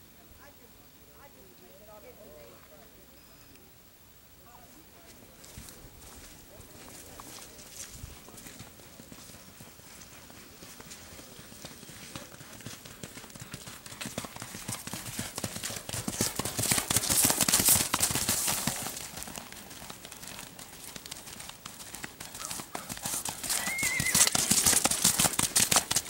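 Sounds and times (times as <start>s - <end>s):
horse hooves on dirt: 5.0s - 26.0s.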